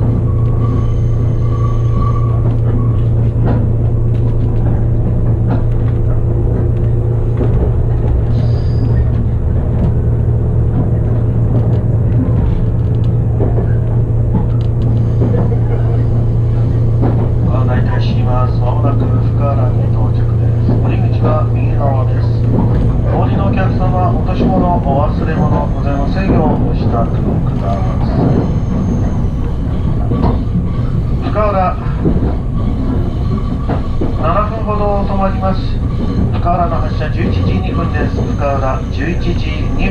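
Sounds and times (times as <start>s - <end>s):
train cabin drone: 0.0s - 39.9s.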